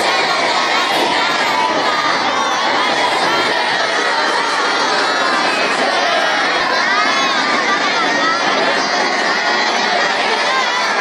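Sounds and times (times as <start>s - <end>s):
boys' voices in unison: 0.0s - 11.0s.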